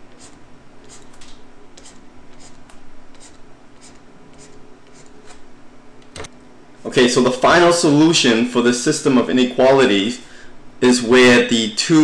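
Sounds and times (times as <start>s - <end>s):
stylus scratching on tablet screen: 0.1s - 5.4s.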